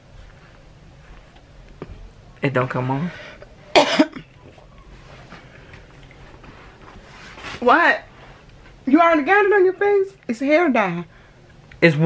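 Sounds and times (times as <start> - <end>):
low background hum: 0.0 - 12.0
faint rustling: 4.3 - 9.1.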